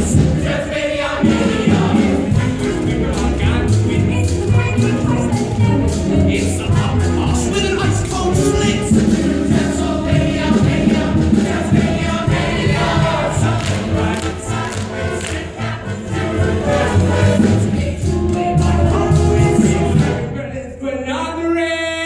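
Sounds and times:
instrumental accompaniment: 0.0 - 20.5
ensemble singing musical chorus: 0.0 - 21.6.

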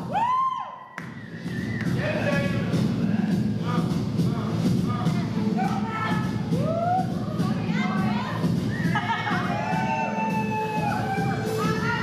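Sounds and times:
dance music with steady drumbeat: 1.1 - 12.0
audience whooping and calling: 8.6 - 12.0.

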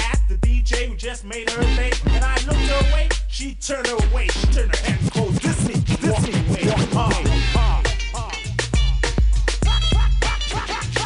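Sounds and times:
bass line: 0.0 - 11.0
hip hop beat: 0.0 - 11.0
rapping: 0.0 - 11.0
turntable scratching: 0.0 - 11.0.

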